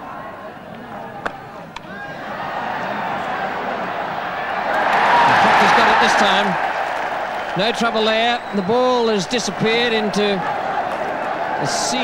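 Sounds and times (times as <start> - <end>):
crowd cheering: 0.2 - 12.0.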